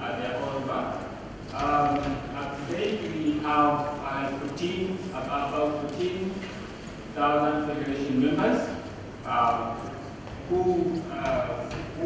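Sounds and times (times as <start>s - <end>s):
man talking into microphone: 0.0s - 12.0s.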